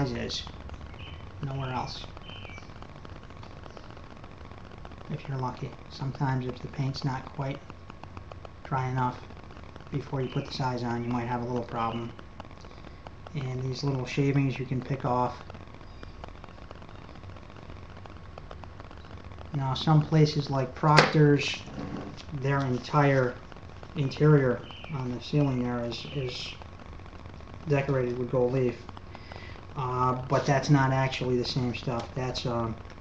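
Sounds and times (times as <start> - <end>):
brush ticking and crackling: 0.0 - 33.0
low steady hum: 0.0 - 33.0
steady room hiss: 0.0 - 33.0.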